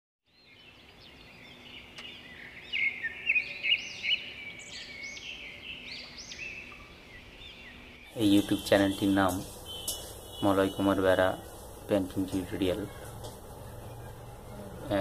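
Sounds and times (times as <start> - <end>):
high bird-like chirps: 1.8 - 11.6.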